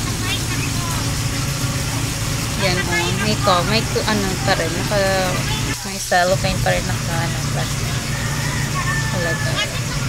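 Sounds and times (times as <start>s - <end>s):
diesel engine droning: 0.0s - 10.0s.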